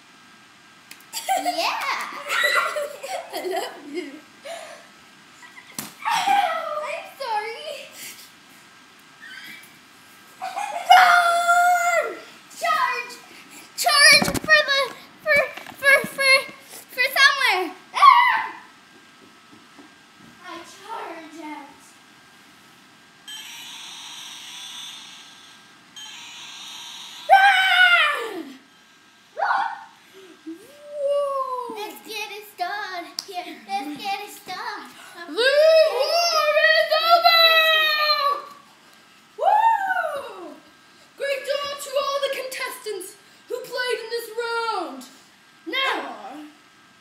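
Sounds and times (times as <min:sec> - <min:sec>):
high-pitched whining cry: 0:10.4 - 0:12.3, 0:23.3 - 0:28.7, 0:29.3 - 0:31.8
high-pitched electronic tone: 0:23.3 - 0:27.3.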